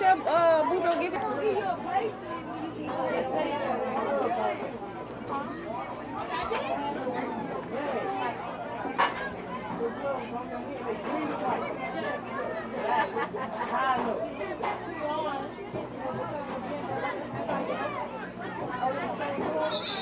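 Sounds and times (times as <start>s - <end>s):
spectators chattering: 0.0s - 20.0s.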